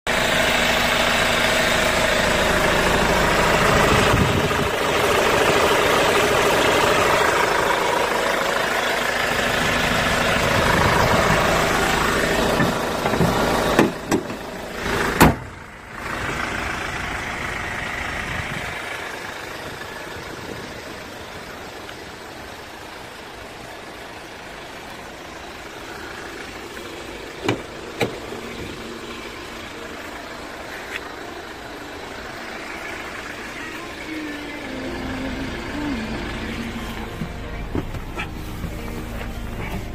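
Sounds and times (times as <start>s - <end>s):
van engine idling: 0.1s - 39.9s
hood slamming: 9.4s - 15.8s, 26.9s - 29.0s, 36.7s - 39.9s.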